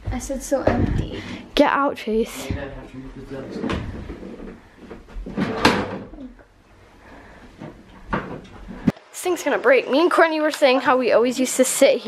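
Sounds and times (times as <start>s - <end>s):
wooden furniture knocking and creaking: 2.4s - 6.4s, 7.6s - 8.9s.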